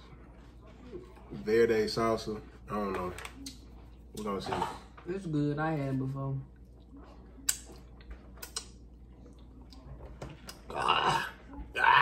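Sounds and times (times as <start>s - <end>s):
wet lip smacks: 7.4s - 8.8s.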